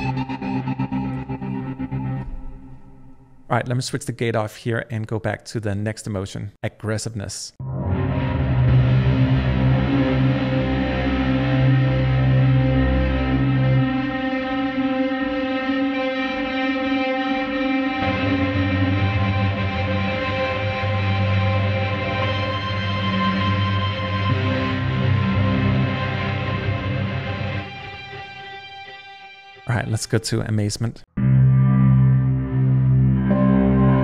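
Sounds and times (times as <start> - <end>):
sustained guitar pad chords: 0.0 - 3.5, 7.6 - 30.0, 31.2 - 34.0.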